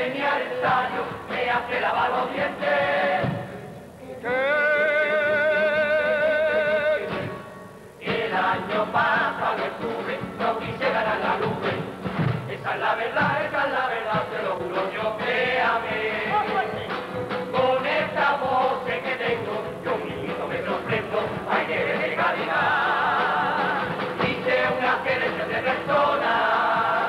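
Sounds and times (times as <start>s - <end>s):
chorus singing: 0.0s - 27.0s
guitar: 0.0s - 27.0s
bass drum: 8.1s - 27.0s
snare drum: 8.1s - 27.0s.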